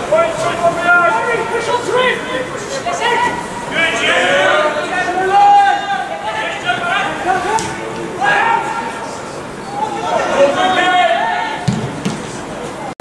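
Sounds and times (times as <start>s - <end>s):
players shouting calls: 0.0s - 12.9s.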